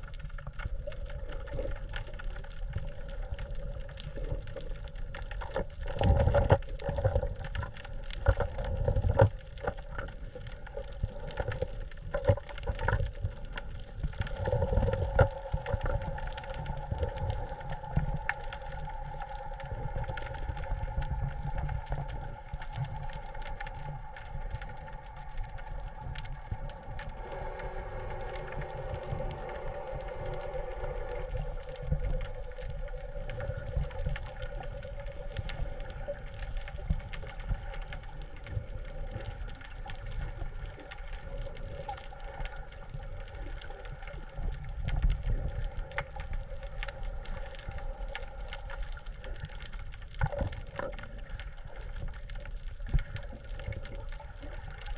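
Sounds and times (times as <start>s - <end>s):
droning hum: 0.0s - 54.9s
faint clicks: 0.0s - 54.9s
underwater rumble of moving water: 0.0s - 54.9s
lower tone: 24.0s - 34.5s.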